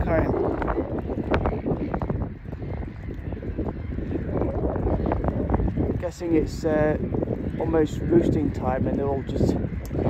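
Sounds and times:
gulls squawking: 0.0 - 10.0
wind rumble on microphone: 0.0 - 10.0.

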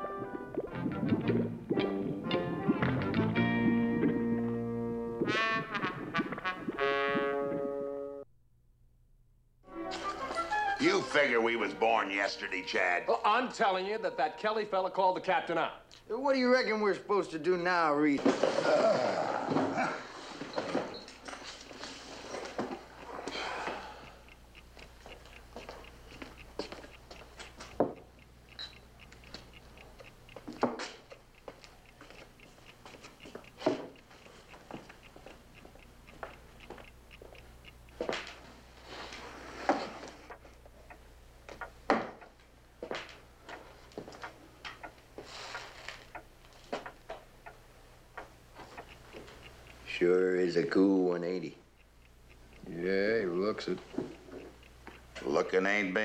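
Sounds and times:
steady low hum: 17.9 - 56.0
faint clicks and crackles: 18.3 - 56.0
footsteps on wooden floor: 24.8 - 28.1, 29.2 - 37.4, 39.0 - 47.2, 48.2 - 49.5.

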